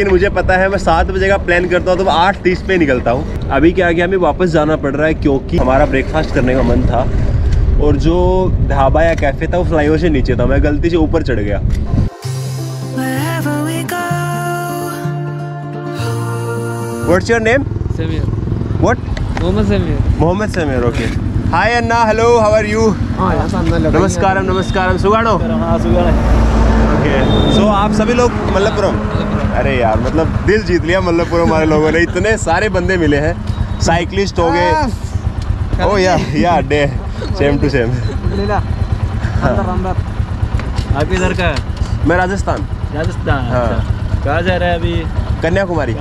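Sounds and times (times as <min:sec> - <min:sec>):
men talking: 0:00.0 - 0:11.8, 0:17.0 - 0:46.0
motorcycle engines rumbling: 0:00.0 - 0:12.1, 0:17.1 - 0:46.0
background music: 0:11.9 - 0:17.5.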